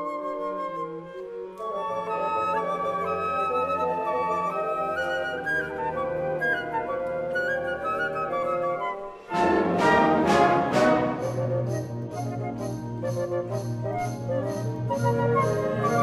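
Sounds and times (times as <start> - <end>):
flute solo melody: 0.0 - 16.0.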